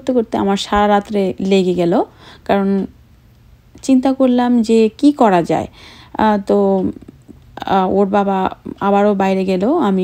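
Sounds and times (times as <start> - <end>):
woman narrating: 0.0 - 3.0, 3.7 - 10.0.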